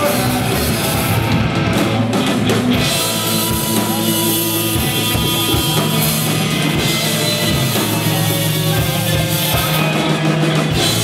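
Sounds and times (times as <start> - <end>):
drum kit beat: 0.0 - 11.0
electric guitars: 0.0 - 11.0.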